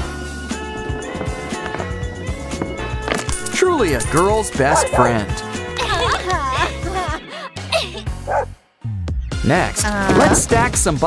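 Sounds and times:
background music: 0:00.0 - 0:11.0
dog barking sound effect: 0:04.5 - 0:05.3, 0:08.3 - 0:08.5.

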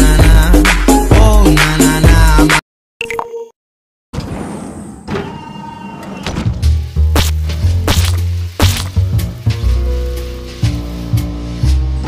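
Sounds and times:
background music with deep bass: 0:00.0 - 0:02.6, 0:06.5 - 0:12.0
sharp hits: 0:07.1 - 0:09.1.

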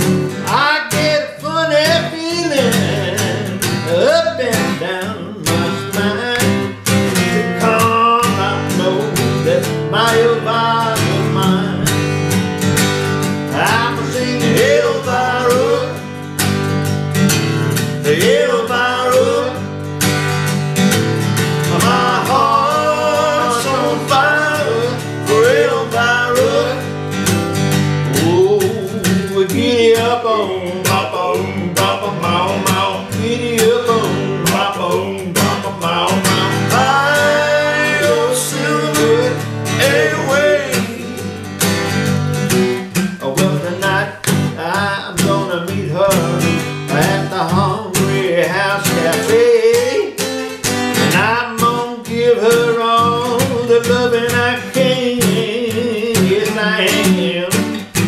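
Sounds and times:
men singing together: 0:00.0 - 0:12.0, 0:13.5 - 0:16.3, 0:17.6 - 0:19.8, 0:21.5 - 0:27.1, 0:28.0 - 0:41.5, 0:43.2 - 0:50.3, 0:51.0 - 0:58.0
acoustic guitar strummed: 0:00.0 - 0:58.0.

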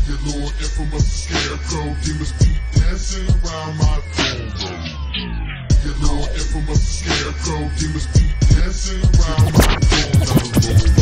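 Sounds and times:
rap over dark hip hop beat: 0:00.0 - 0:11.0.

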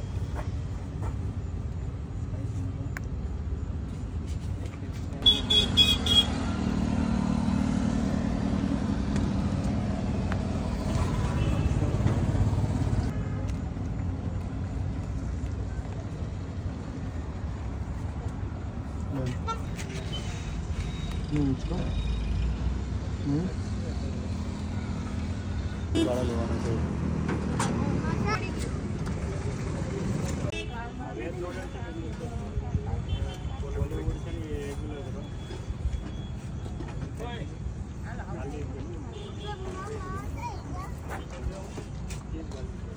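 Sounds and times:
vehicle engine hum: 0:00.0 - 0:32.5.

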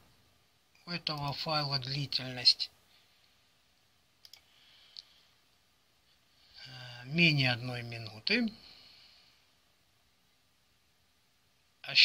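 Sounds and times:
computer mouse clicks: 0:04.2 - 0:05.1.

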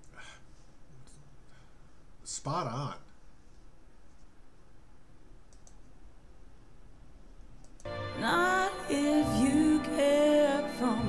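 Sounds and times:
computer mouse clicking: 0:05.4 - 0:06.0, 0:07.5 - 0:07.9.

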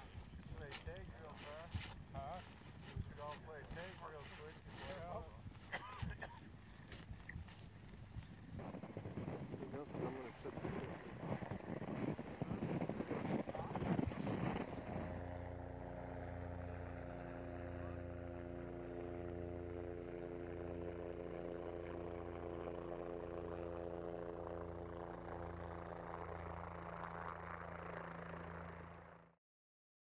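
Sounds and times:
low mechanical hum: 0:00.0 - 0:29.1.

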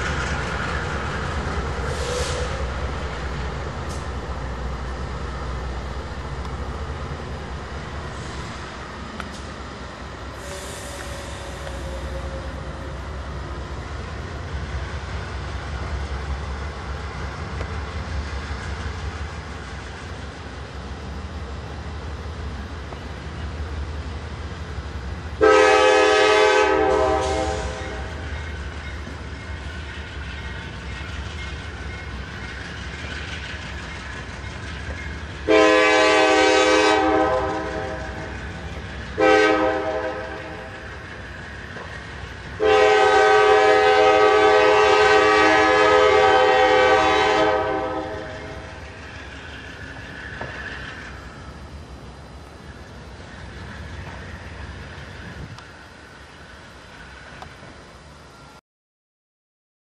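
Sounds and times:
locomotive air horn blasts: 0:25.4 - 0:28.2, 0:35.5 - 0:38.2, 0:39.2 - 0:40.8, 0:42.6 - 0:48.6.

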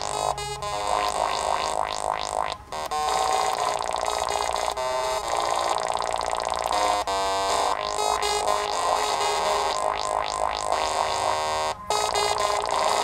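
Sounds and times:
synthesizer held notes: 0:00.0 - 0:13.0.

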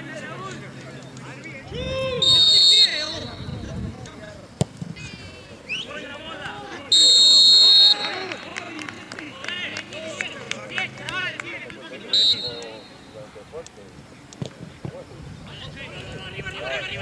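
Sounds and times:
players shouting: 0:00.0 - 0:03.5, 0:05.1 - 0:13.4
referee's whistle blasts: 0:02.0 - 0:03.7, 0:06.9 - 0:08.4, 0:12.1 - 0:13.2.

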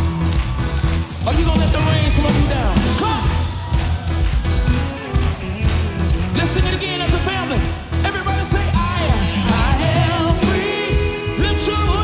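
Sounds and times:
bass and guitars: 0:00.0 - 0:12.0
keyboard: 0:00.0 - 0:12.0
person singing: 0:08.0 - 0:12.0.

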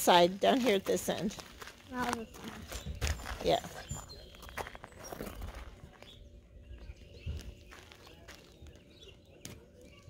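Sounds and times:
shoes scuffing on gravel: 0:00.4 - 0:06.2, 0:07.2 - 0:08.8.

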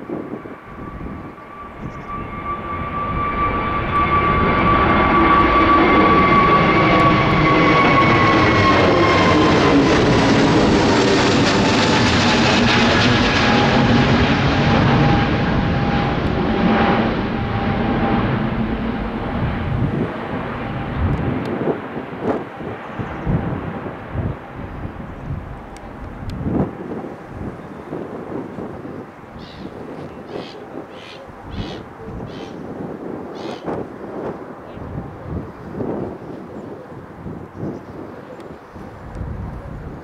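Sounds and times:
jet engine roar overhead: 0:00.0 - 0:40.0.

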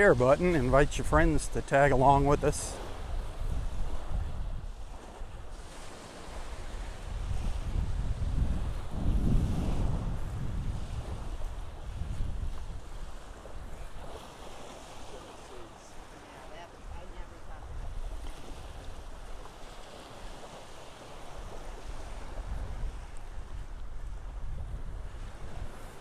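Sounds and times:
wind buffeting microphone: 0:00.0 - 0:15.5, 0:16.8 - 0:26.0
small waves washing on beach: 0:00.0 - 0:26.0.

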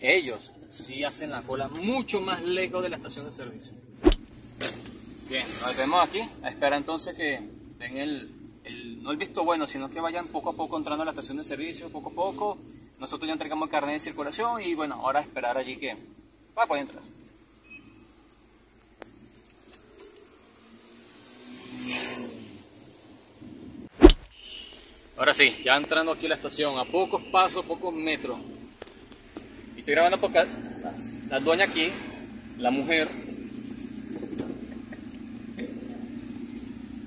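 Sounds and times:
car engine low hum: 0:00.0 - 0:21.2, 0:22.4 - 0:37.0
sharp click: 0:04.0 - 0:04.3
vehicle passing: 0:20.3 - 0:23.1.

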